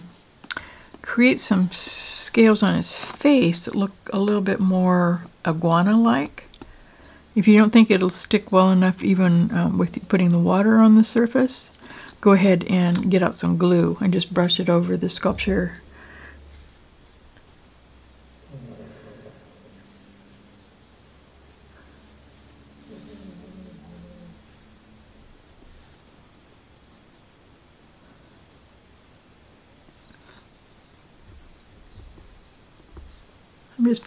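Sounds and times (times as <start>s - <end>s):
crickets chirping: 0.0s - 34.0s
faint low voice murmurs: 18.5s - 20.0s, 22.9s - 24.4s.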